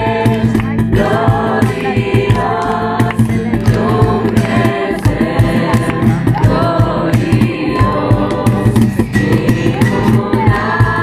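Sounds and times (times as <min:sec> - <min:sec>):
cajon beat: 0:00.0 - 0:11.0
group singing in unison: 0:00.0 - 0:11.0
strummed acoustic guitar: 0:00.0 - 0:11.0.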